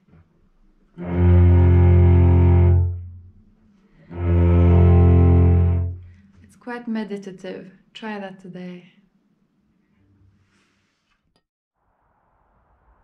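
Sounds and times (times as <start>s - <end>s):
cello bowed double stops: 1.0s - 3.4s, 4.0s - 6.2s.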